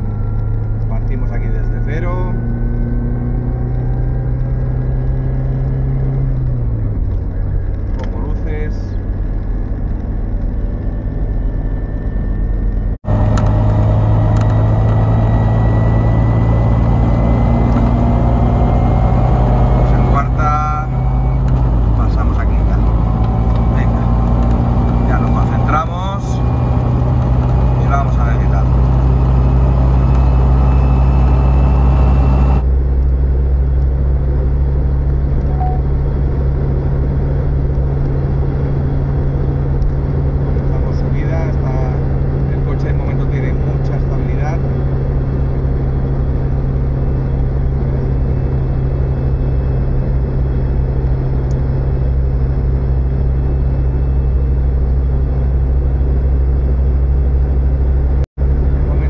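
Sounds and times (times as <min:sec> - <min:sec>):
car engine accelerating: 0:00.0 - 0:59.0.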